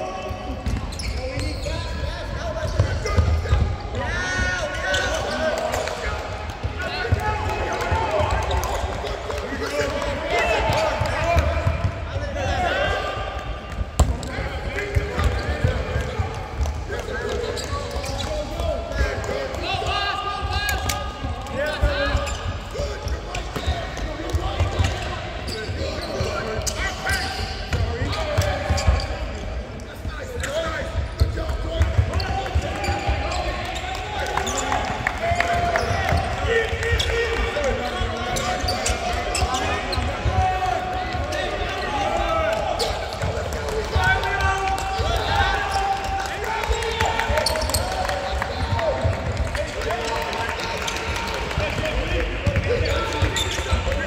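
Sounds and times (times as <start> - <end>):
basketballs bouncing on hardwood: 13.8 - 18.3.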